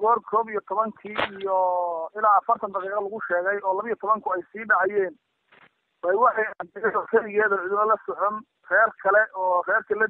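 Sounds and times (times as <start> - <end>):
person narrating news: 0.0 - 5.2, 6.0 - 10.0.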